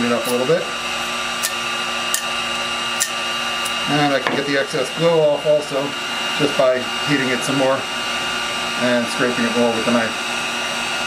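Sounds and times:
heat gun fan humming: 0.0 - 11.0.

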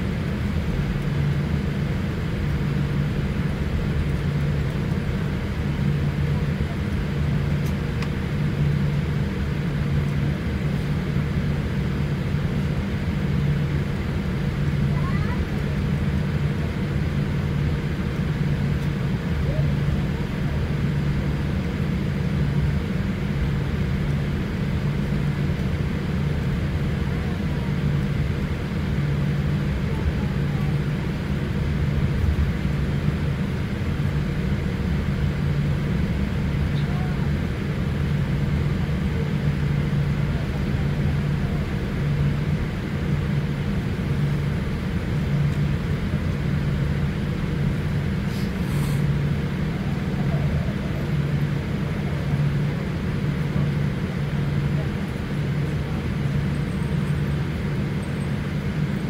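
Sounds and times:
jet engines idling in cabin: 0.0 - 59.0.

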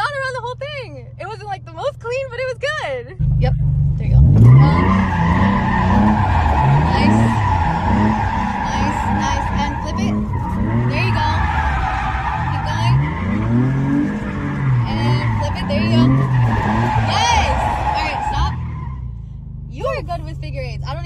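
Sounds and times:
car engine revving: 0.0 - 21.0
tyres squealing: 4.2 - 19.0.

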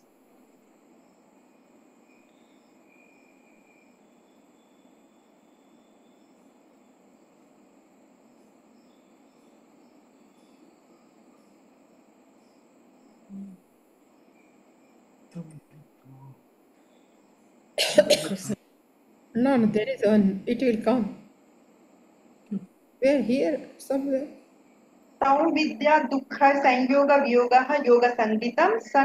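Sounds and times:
steady low hiss: 0.0 - 29.0
thin high whine: 0.0 - 29.0
short low voice sound: 15.4 - 16.4.

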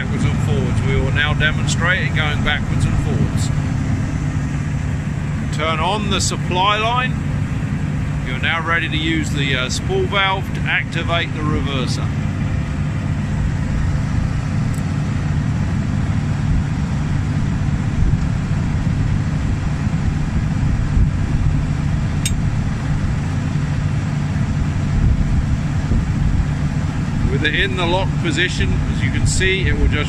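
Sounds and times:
combine engine droning: 0.0 - 30.0
dull mechanical bumps: 0.0 - 30.0.

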